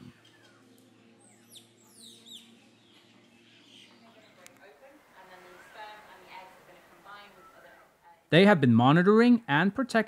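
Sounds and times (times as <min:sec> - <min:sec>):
birds whistling: 0:00.0 - 0:04.4.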